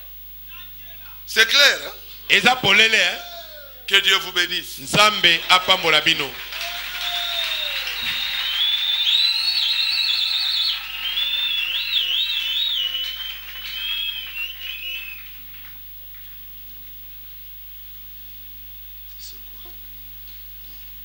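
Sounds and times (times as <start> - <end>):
low steady hum: 0.0 - 21.0
people whistling warbling trills: 6.6 - 15.5.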